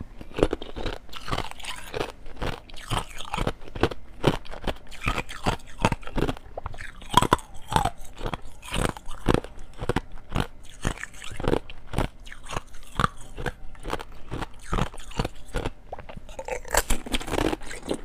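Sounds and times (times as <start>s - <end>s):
ice being chewed: 0.0s - 18.0s.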